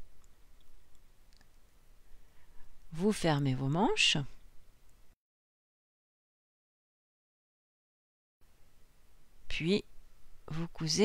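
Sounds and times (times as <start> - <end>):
faint clicks: 0.2 - 1.6.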